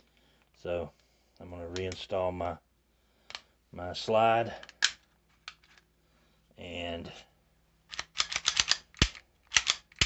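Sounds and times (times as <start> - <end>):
pistol slide metallic clicks and scrapes: 4.6 - 5.9, 7.9 - 10.0.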